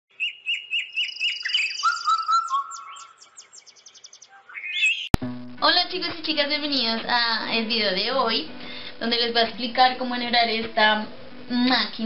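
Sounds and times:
bird chirps: 0.1s - 5.2s
downward-sweeping bird notes: 0.1s - 5.2s
high bird trill: 0.1s - 5.2s
low whistled bird notes: 0.1s - 5.2s.

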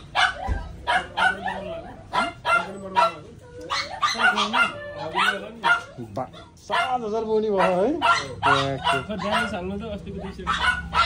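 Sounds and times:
dog barking: 0.0s - 11.0s.

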